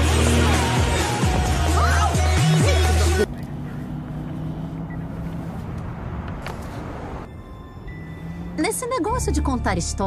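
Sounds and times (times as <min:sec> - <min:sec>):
background music: 0:00.0 - 0:03.3, 0:07.3 - 0:10.0
low rumble of street traffic: 0:00.0 - 0:10.0.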